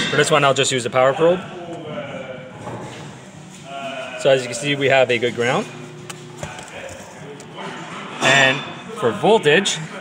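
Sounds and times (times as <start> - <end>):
handling noise: 5.4 - 7.7.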